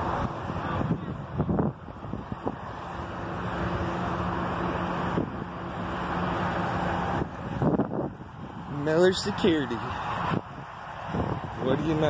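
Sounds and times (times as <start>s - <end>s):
wind on microphone: 0.0s - 3.0s, 6.9s - 12.0s
traffic noise: 0.0s - 12.0s
vehicle engine humming: 0.0s - 12.0s.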